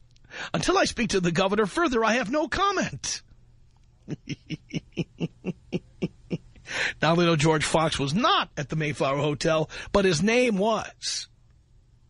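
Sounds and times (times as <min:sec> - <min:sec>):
man laughing: 0:04.0 - 0:07.0
breathy sound: 0:06.5 - 0:07.0.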